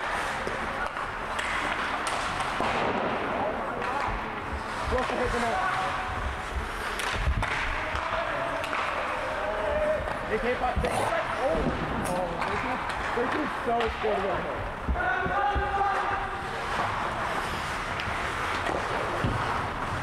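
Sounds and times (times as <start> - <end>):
rink background noise: 0.0 - 20.0.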